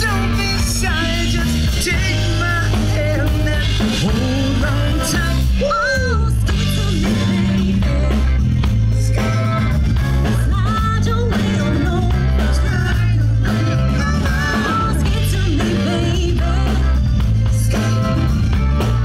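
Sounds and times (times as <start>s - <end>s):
woman singing: 0.0s - 18.3s
man singing: 0.0s - 18.9s
bass guitar: 0.0s - 19.0s
drum kit: 0.0s - 19.0s
electric guitars: 0.0s - 19.0s.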